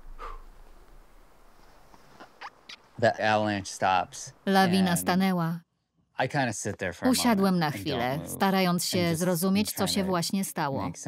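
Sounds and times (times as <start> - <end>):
low background hiss: 0.0 - 5.6.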